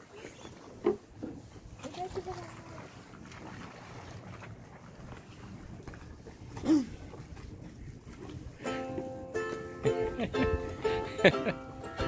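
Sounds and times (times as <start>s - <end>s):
low wind rumble on microphone: 3.0s - 9.0s.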